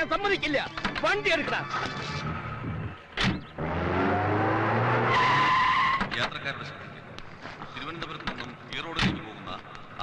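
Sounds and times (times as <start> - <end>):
car engine revving: 2.1 - 5.7
tyres squealing: 3.2 - 6.4.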